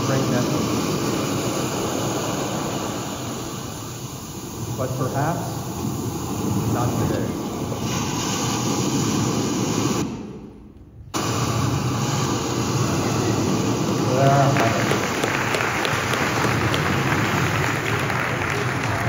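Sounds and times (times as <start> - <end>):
hall background rumble: 11.4 - 19.0
audience applauding: 14.1 - 19.0.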